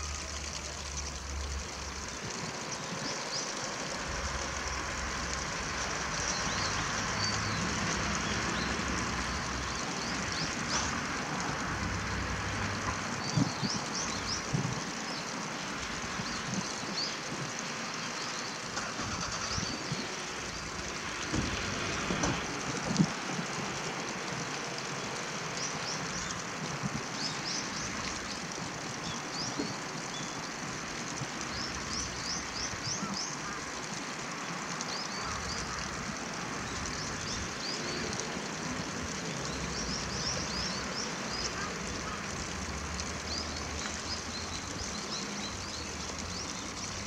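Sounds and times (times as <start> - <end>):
small birds chirping: 0.0 - 11.8, 13.0 - 18.7, 24.6 - 47.0.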